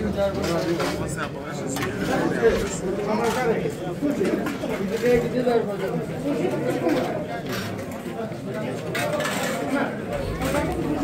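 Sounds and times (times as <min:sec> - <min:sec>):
men talking: 0:00.0 - 0:08.8.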